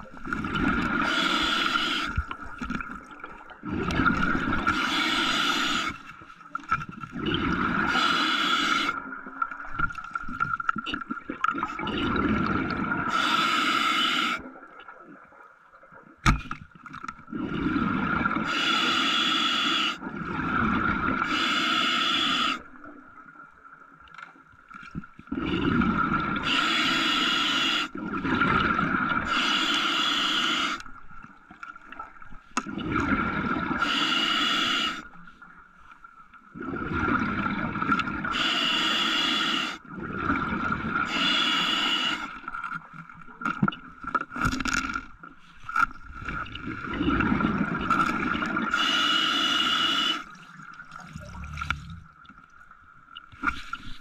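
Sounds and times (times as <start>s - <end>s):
diver breathing through mouthpiece: 41.1s - 42.4s.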